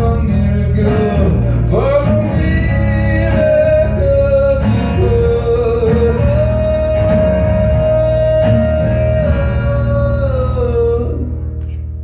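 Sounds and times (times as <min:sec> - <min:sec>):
man singing long notes: 0:00.0 - 0:11.4
strummed acoustic guitar: 0:00.0 - 0:12.0.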